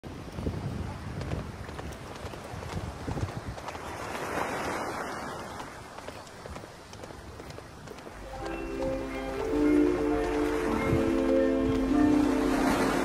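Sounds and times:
wind on microphone: 0.0 - 8.2, 9.5 - 13.0
horse hooves walking on sand: 0.1 - 13.0.

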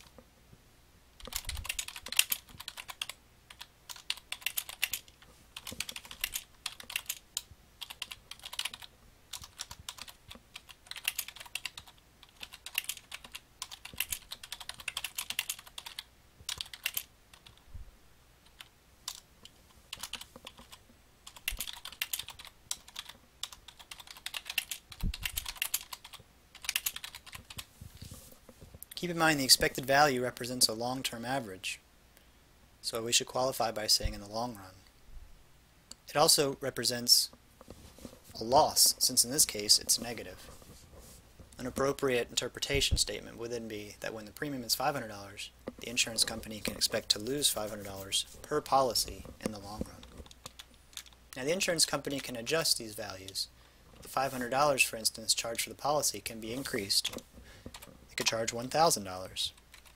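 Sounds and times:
keyboard typing clicks: 1.2 - 17.6, 20.0 - 27.7.

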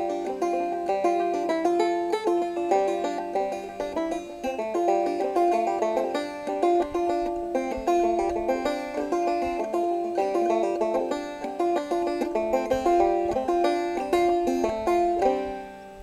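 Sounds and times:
banjo playing old-time tune: 0.0 - 16.0.

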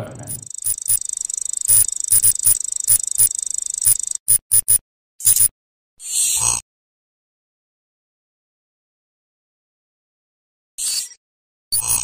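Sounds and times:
high-pitched digital whir: 0.0 - 5.5, 11.8 - 12.0
short sharp blips: 0.0 - 5.5.

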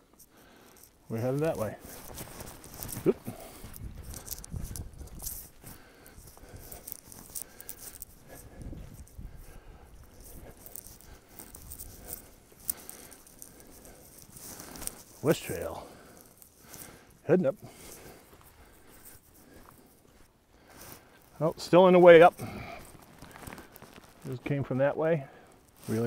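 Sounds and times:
footsteps walking: 0.0 - 24.4.

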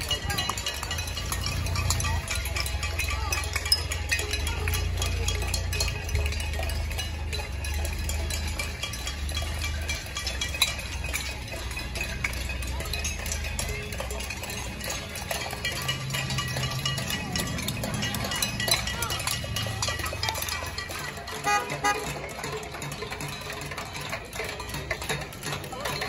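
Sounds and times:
cars rolling slowly past: 0.0 - 26.0
clanking and ringing from crowd: 0.0 - 26.0.

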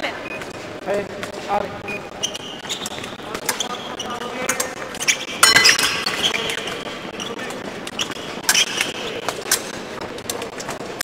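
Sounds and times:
background voices in a hall: 0.0 - 11.0.

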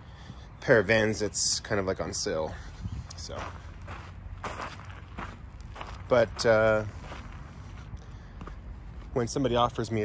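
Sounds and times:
footsteps crunching on gravel: 2.5 - 9.9.

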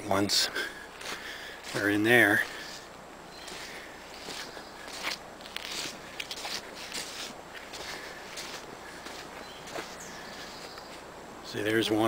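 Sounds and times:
twigs and leaves crackling: 0.8 - 11.1
footsteps through dry leaves: 0.9 - 11.1.

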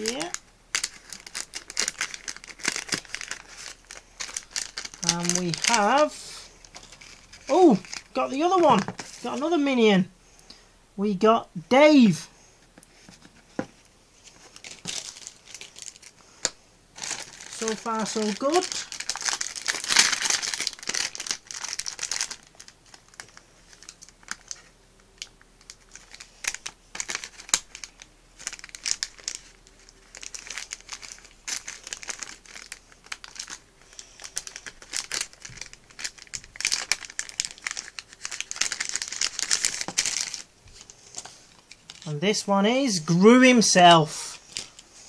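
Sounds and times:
plastic packet crinkling: 0.0 - 9.8, 14.2 - 42.4, 44.4 - 44.9.

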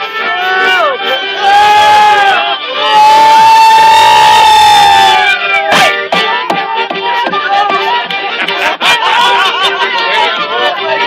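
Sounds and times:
flute violins and accordion playing: 0.0 - 11.0.

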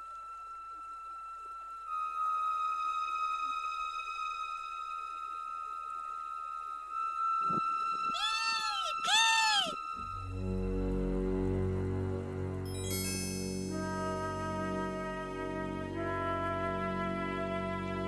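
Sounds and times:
kestrel calling: 8.1 - 9.8
soundtrack music with long note: 9.9 - 18.0.

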